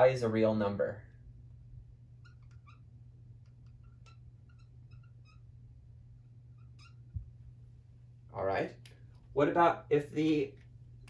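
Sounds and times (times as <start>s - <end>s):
steady low hum: 0.0s - 11.0s
marker squeaking on whiteboard: 2.0s - 7.4s.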